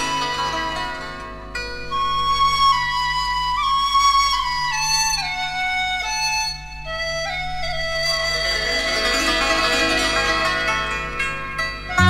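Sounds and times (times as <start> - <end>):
flute melody: 0.0 - 0.8, 1.8 - 9.7
low accompaniment: 7.6 - 12.0.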